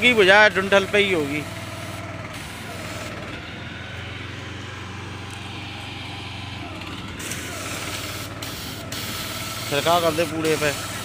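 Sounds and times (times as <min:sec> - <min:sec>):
fire hose spraying water: 0:00.0 - 0:03.3, 0:07.2 - 0:11.0
pump humming: 0:00.0 - 0:11.0.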